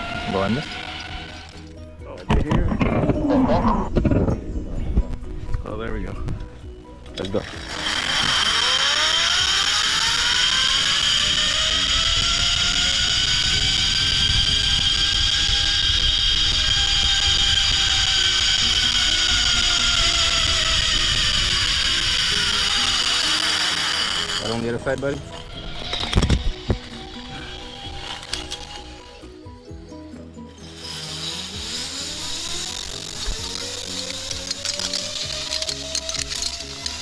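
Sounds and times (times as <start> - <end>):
zipline pulley whirring whine: 0.0 - 1.9, 6.4 - 37.0.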